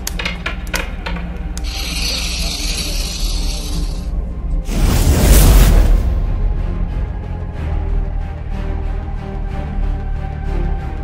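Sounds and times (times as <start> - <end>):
die clattering on wooden table: 0.0 - 1.5.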